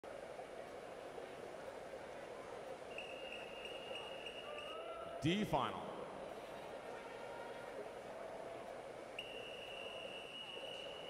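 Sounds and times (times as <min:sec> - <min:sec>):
indoor pool hall background noise: 0:00.0 - 0:11.0.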